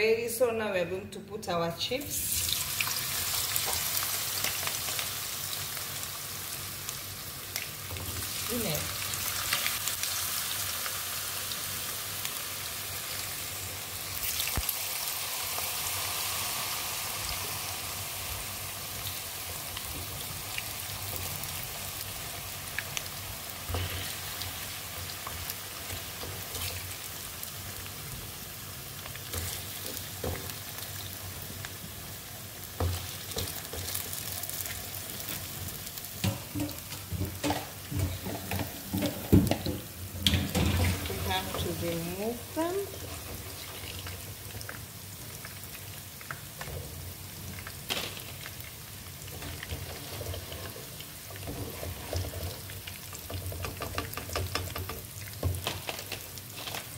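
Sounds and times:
chips sizzling in hot oil: 2.1 - 56.9.

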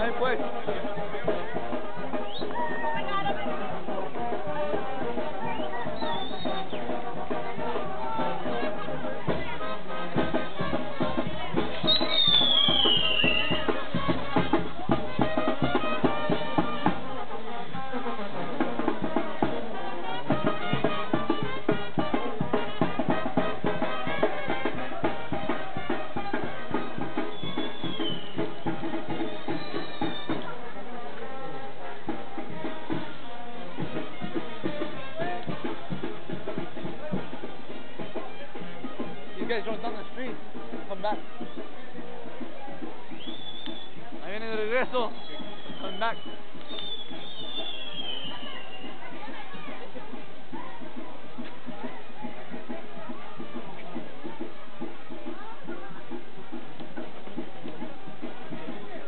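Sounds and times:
brass band music: 0.0 - 50.1
falling whistle: 5.5 - 6.8, 11.8 - 13.7, 27.3 - 28.6, 29.2 - 30.4, 43.2 - 44.0, 45.1 - 49.0.

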